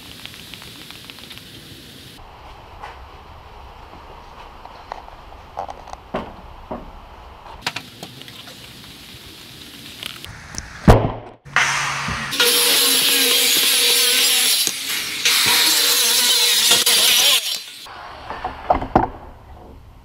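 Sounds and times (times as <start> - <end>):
power tool cutting wood: 12.3 - 17.9.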